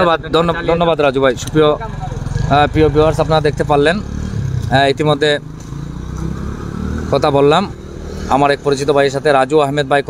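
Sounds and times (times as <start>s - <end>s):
motorcycle engine rumbling: 0.0s - 10.0s.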